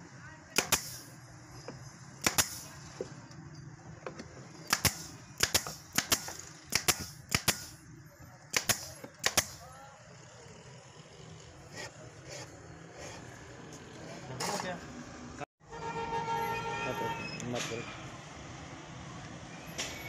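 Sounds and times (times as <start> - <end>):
nail gun firing into board: 0.6 - 1.1, 2.2 - 2.7, 4.7 - 7.8, 8.5 - 9.6.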